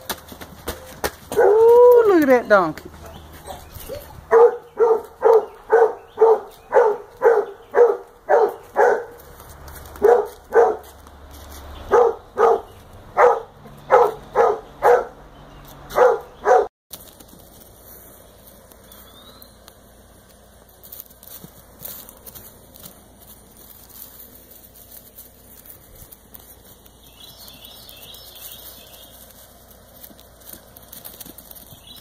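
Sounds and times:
faint outdoor background: 0:00.0 - 0:32.0
dog barking: 0:01.3 - 0:01.6, 0:03.5 - 0:09.2, 0:10.0 - 0:11.0, 0:11.9 - 0:15.2, 0:15.9 - 0:16.7.

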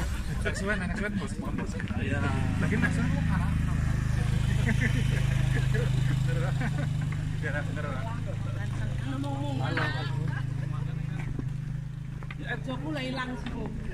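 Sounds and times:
people chatting: 0:00.0 - 0:11.5, 0:12.3 - 0:13.9
low vehicle engine hum: 0:00.0 - 0:13.9.

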